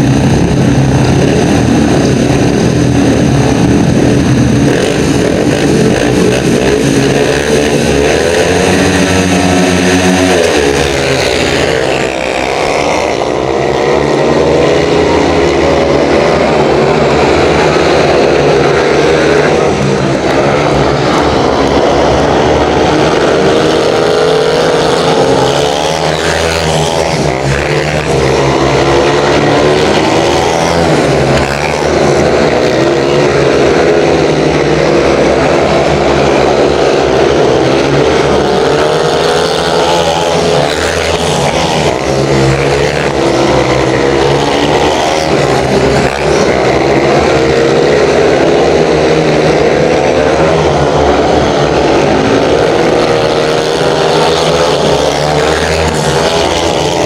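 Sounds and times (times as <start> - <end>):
motorcycle engines racing: 0.0 - 57.0.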